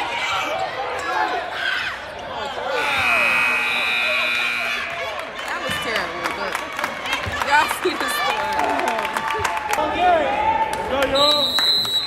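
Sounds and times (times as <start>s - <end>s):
crowd voices: 0.0s - 12.0s
scoreboard buzzer: 2.7s - 5.1s.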